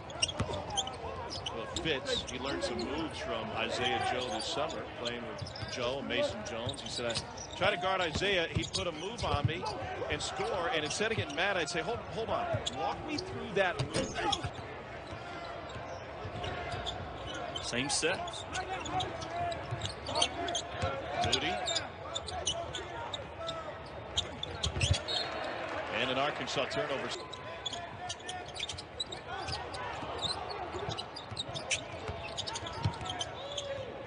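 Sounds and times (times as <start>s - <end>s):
sneakers squeaking: 0.0s - 34.0s.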